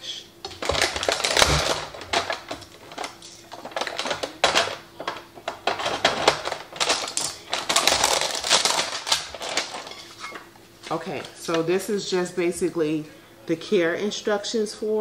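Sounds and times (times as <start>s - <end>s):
packaging crinkling and rustling: 0.4s - 11.4s.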